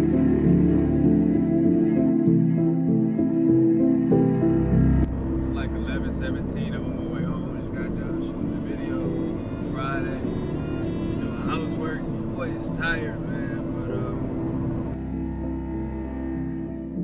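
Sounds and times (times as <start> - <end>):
music playing: 0.0 - 17.0
man talking: 5.4 - 10.4, 11.2 - 14.4.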